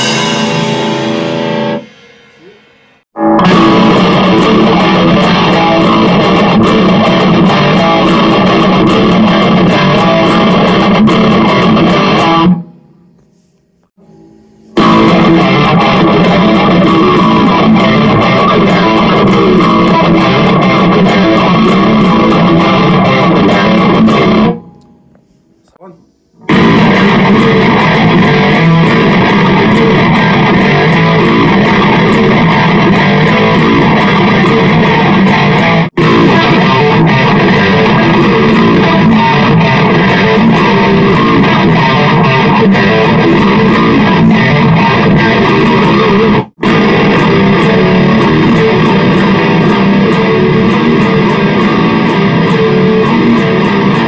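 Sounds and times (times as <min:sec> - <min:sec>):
electric guitar heavy metal riffs: 0:00.0 - 0:12.9, 0:14.0 - 0:25.4, 0:26.4 - 0:54.0.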